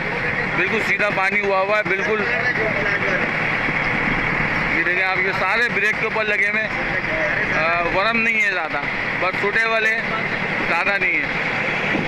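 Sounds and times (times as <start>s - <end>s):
boat engine running: 0.0s - 12.0s
water rushing: 0.0s - 12.0s
wind: 0.0s - 12.0s.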